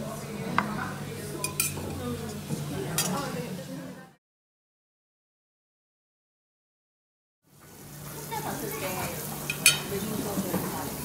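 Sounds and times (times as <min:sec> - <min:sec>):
background chatter: 0:00.0 - 0:04.2, 0:07.9 - 0:11.0
tableware clink: 0:01.4 - 0:01.8, 0:09.5 - 0:09.9.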